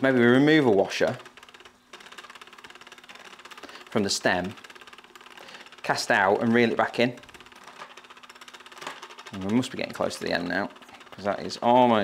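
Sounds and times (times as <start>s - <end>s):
fishing reel ticking whir: 0.0s - 12.0s.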